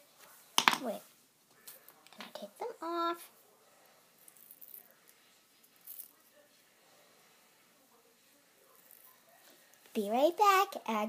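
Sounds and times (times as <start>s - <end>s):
girl speaking: 0.8s - 1.1s, 2.3s - 3.3s, 10.0s - 11.0s.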